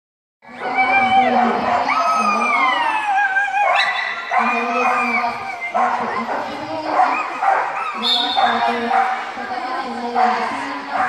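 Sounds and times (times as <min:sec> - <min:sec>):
dog whining and howling: 0:00.5 - 0:08.7.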